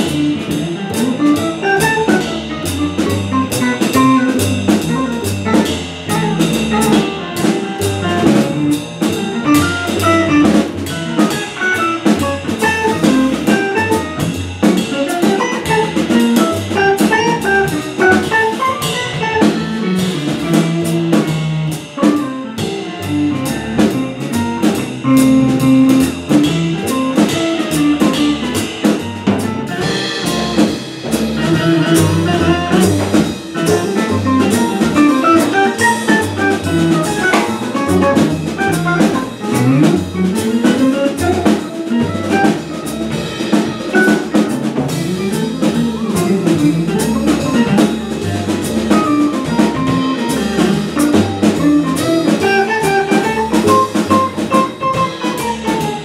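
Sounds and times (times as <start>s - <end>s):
electric guitar: 0.0s - 21.3s, 29.3s - 56.0s
saxophone playing: 0.0s - 28.6s, 29.7s - 56.0s
busy drum kit: 0.0s - 56.0s
upright double bass: 0.0s - 56.0s.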